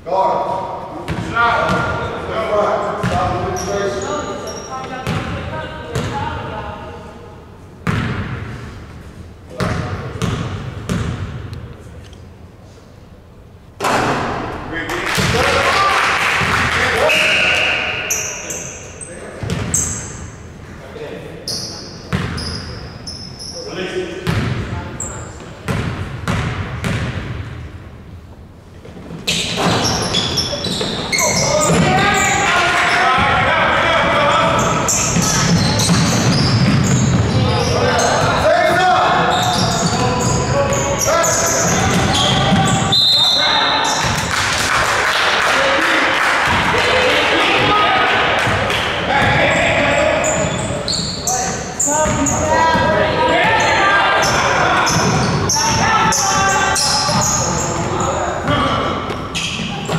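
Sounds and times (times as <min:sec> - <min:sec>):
sneakers squeaking: 0:01.0 - 0:06.8, 0:07.7 - 0:12.4, 0:16.4 - 0:20.7, 0:21.4 - 0:27.7, 0:28.8 - 0:44.3, 0:48.4 - 0:59.9
whistle blast: 0:17.0 - 0:18.4, 0:42.9 - 0:43.9
people calling out: 0:37.3 - 0:44.0, 0:46.5 - 0:59.0
people shouting: 0:52.4 - 0:57.4.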